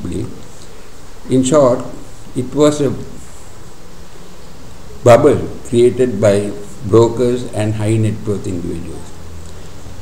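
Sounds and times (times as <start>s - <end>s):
faint high whine: 0.0s - 10.0s.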